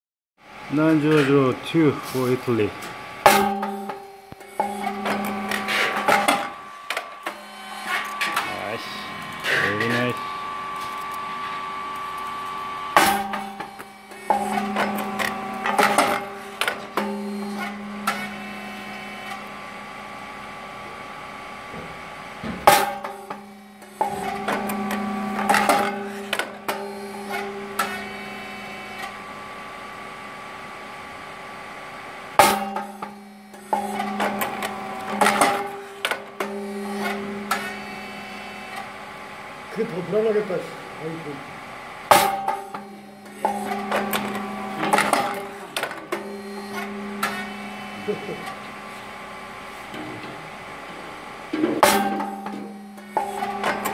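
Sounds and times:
machine hum: 0.4s - 53.9s.

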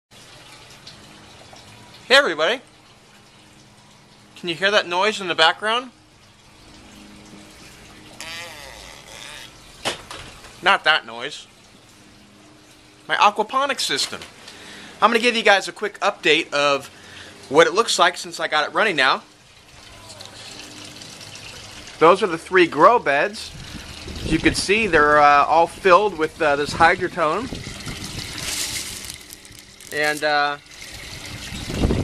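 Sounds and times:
water running and trickling: 0.1s - 32.0s
wavering pitched sound: 8.2s - 9.6s.

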